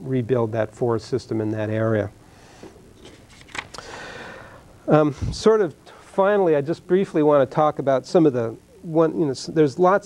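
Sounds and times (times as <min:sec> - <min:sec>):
paper rustling: 0:03.0 - 0:03.8.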